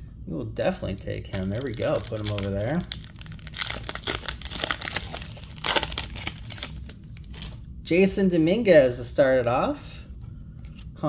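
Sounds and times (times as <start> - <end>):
wrapper tearing and crinkling: 1.3 - 7.6.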